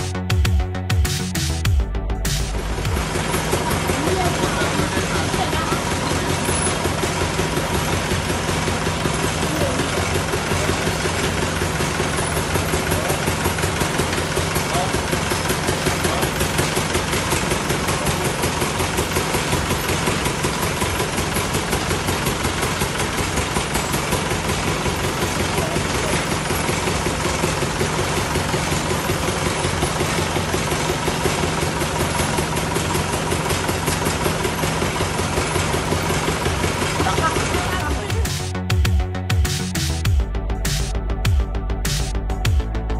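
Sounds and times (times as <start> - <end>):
drilling rig engine droning: 0.0 - 42.9.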